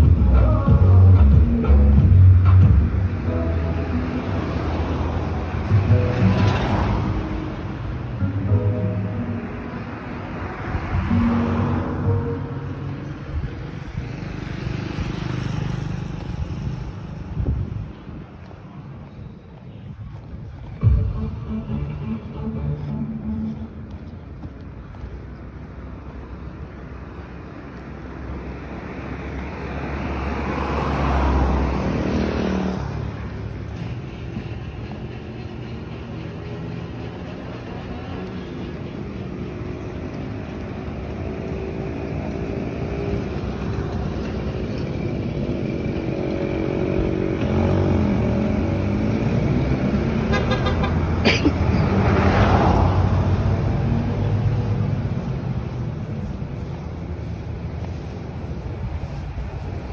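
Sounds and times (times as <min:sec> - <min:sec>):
engine hum passing: 0:00.0 - 0:59.9
vehicle passing: 0:01.9 - 0:59.9.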